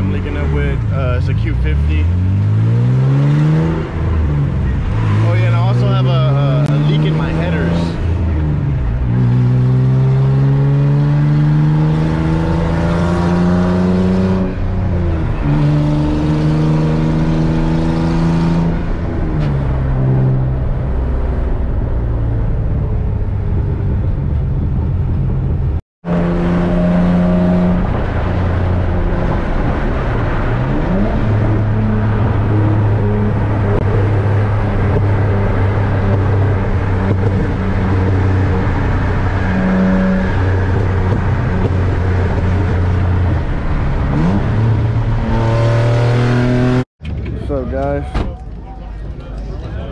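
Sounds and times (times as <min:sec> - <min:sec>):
car engine accelerating: 0:00.0 - 0:47.6.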